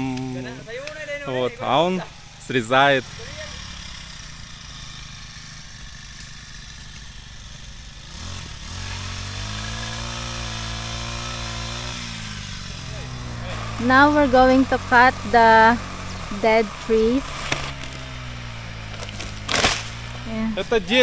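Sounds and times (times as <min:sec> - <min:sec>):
small power tool engine revving: 0:01.7 - 0:21.0.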